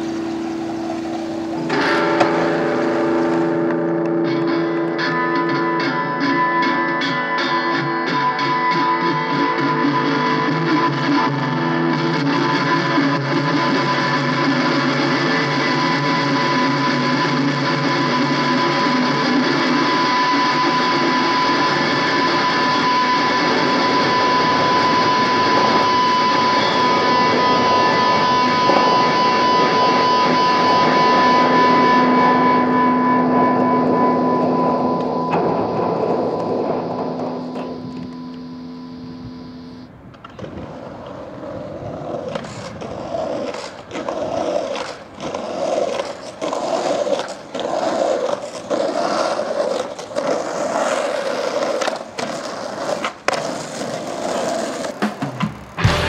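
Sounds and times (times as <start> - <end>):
skateboard clacks: 0.0 - 22.8, 35.0 - 38.5, 40.0 - 56.0
skateboard wheels rolling on concrete: 0.0 - 56.0.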